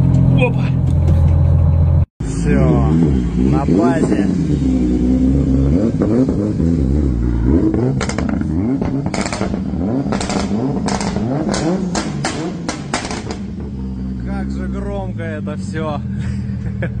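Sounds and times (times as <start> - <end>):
car engine revving: 0.0 - 17.0
exhaust cracks and pops: 7.7 - 13.6.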